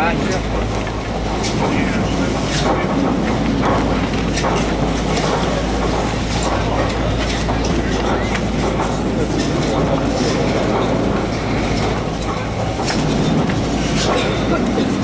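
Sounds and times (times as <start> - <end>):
chairlift machinery hum: 0.0 - 15.0
chairs clattering and clicking: 0.0 - 15.0.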